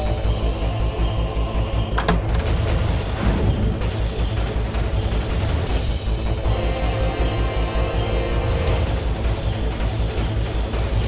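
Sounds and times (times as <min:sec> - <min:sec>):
dramatic music with pulsing bass: 0:00.0 - 0:11.0.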